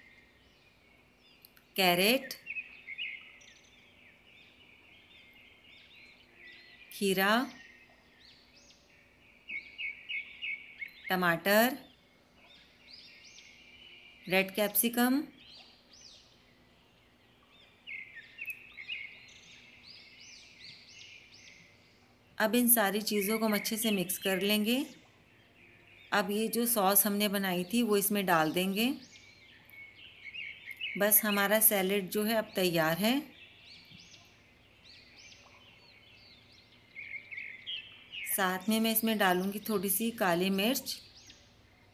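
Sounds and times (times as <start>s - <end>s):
small birds chirping: 0.0s - 41.9s.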